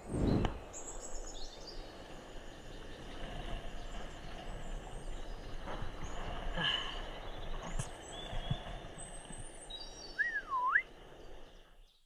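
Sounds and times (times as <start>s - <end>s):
wind on microphone: 0.0s - 2.0s
faint bird chirps: 0.2s - 12.0s
bird whistled call: 9.7s - 10.9s.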